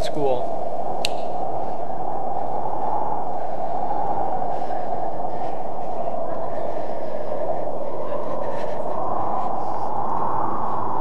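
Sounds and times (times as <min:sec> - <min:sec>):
steady rushing wind: 0:00.0 - 0:11.0.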